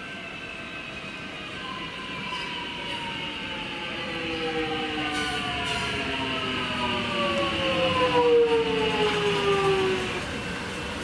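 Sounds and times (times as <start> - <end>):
rumble of wheels on rails: 0.0 - 11.0
electric train motor whine: 1.6 - 11.0.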